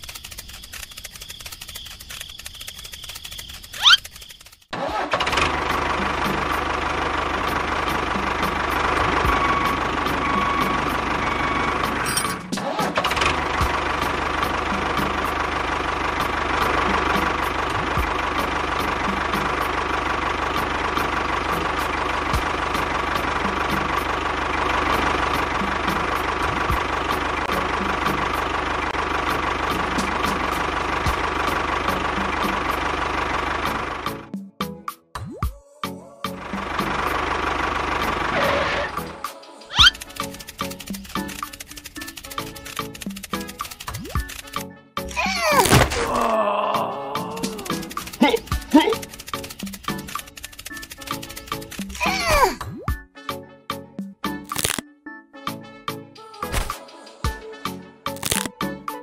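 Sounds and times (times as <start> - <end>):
tractor engine running: 0.0 - 34.6, 36.2 - 52.5, 58.2 - 58.6.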